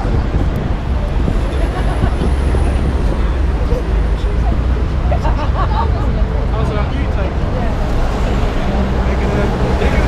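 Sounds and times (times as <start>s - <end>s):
murmur of voices: 0.0s - 10.0s
street traffic rumble: 0.0s - 10.0s.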